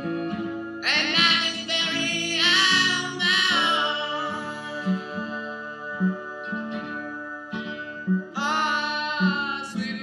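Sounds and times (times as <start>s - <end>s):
soul ballad with guitar and bass: 0.0s - 10.0s.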